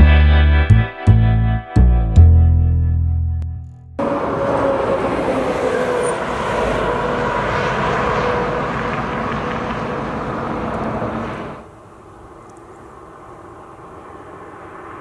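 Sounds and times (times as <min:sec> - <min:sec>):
car passing: 0:04.0 - 0:15.0
heavy truck passing: 0:04.0 - 0:15.0.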